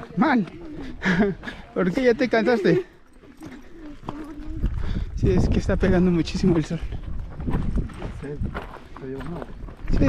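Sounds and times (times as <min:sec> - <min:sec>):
footsteps on rocky dirt trail: 0:00.0 - 0:10.0.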